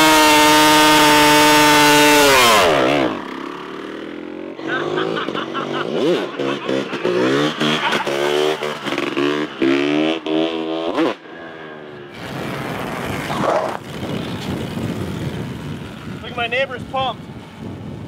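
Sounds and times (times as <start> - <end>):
two-stroke motorbike revving: 0.0 - 18.0.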